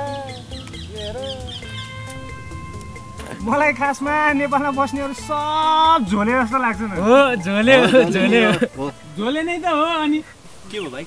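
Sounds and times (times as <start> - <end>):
background music with held notes: 0.0 - 11.0
swooping animal calls: 0.0 - 11.0.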